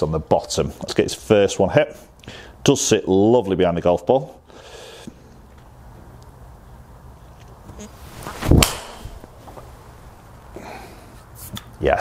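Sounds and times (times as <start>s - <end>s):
golf club swishing through air: 7.9s - 10.2s
muted club striking golf ball: 8.5s - 9.3s.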